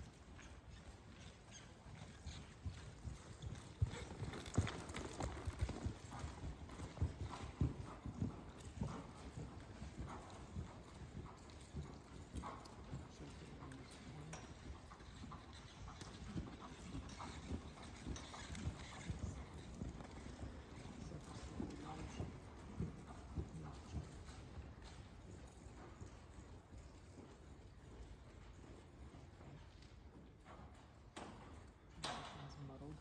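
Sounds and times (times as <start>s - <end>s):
hoofbeats on soft dirt: 0.0s - 33.0s.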